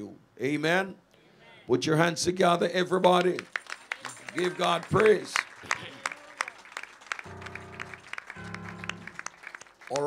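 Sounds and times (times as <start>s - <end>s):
hand claps: 3.2s - 10.0s
church band playing chords: 7.1s - 9.4s.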